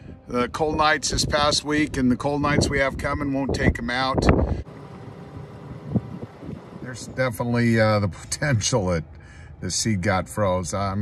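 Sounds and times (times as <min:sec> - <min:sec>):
man talking: 0:00.3 - 0:04.4, 0:06.8 - 0:11.0.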